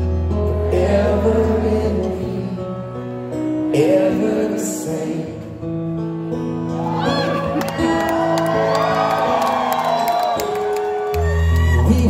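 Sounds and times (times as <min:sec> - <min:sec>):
acoustic guitar: 0:00.0 - 0:12.0
crowd whooping: 0:06.7 - 0:12.0.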